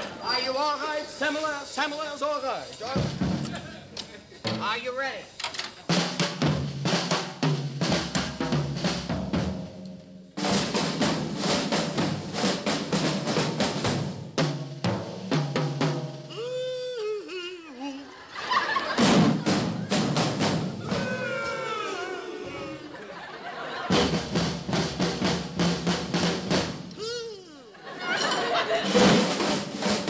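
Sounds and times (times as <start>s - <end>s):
drum kits playing: 0.0s - 30.0s.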